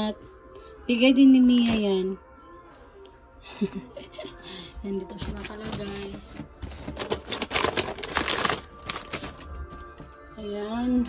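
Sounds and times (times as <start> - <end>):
plastic wrappers crinkling: 1.5 - 2.0, 4.9 - 10.2.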